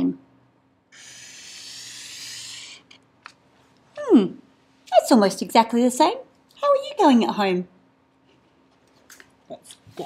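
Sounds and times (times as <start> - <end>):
marker scratching on paper: 1.0 - 2.8.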